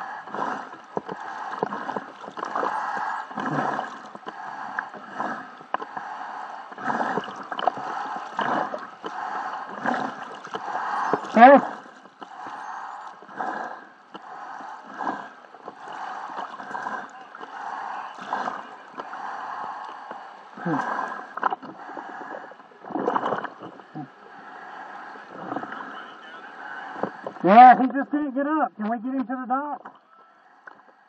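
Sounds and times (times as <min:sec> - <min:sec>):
muffled water sloshing and splashing: 0:00.0 - 0:27.9.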